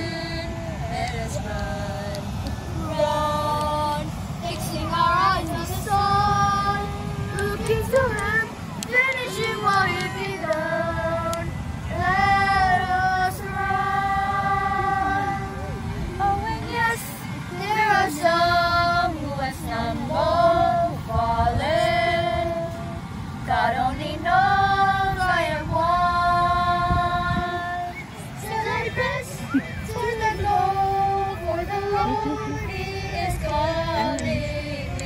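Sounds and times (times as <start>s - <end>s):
woman and children singing: 0.0s - 35.0s.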